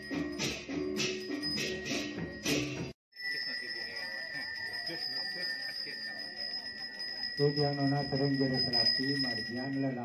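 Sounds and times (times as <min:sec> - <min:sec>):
handbell ringing: 0:00.0 - 0:10.0
low murmur of voices: 0:03.2 - 0:10.0.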